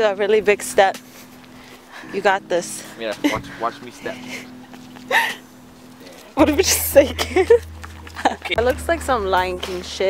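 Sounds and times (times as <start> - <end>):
faint low hum: 3.3 - 10.0.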